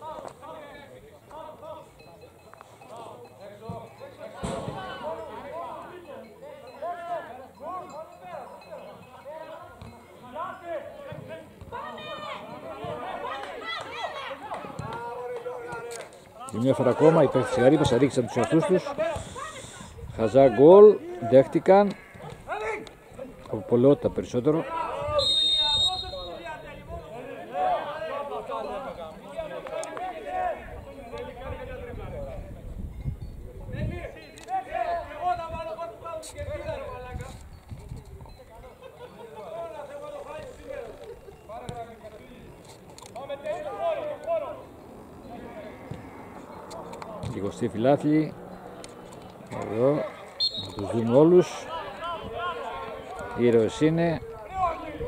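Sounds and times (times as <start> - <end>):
distant voices calling out: 0.0 - 31.8, 38.7 - 55.0
thump: 4.4 - 4.8.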